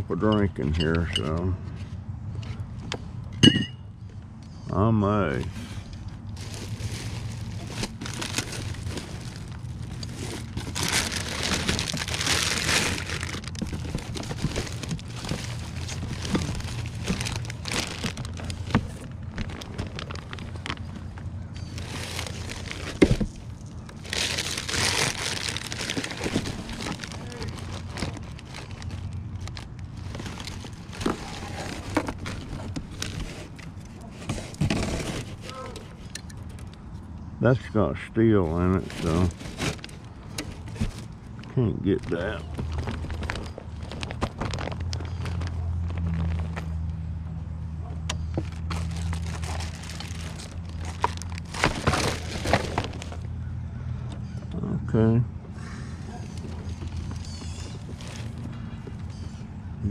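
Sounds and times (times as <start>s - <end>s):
plastic bags crinkling: 6.2s - 36.4s, 38.5s - 46.9s, 48.4s - 53.4s, 56.3s - 59.2s.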